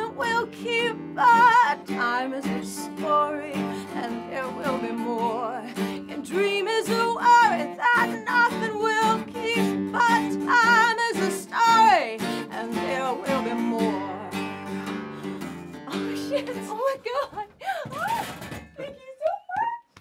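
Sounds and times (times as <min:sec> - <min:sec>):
woman singing with vibrato: 0:00.0 - 0:14.8, 0:15.9 - 0:20.0
acoustic guitar: 0:00.0 - 0:19.5.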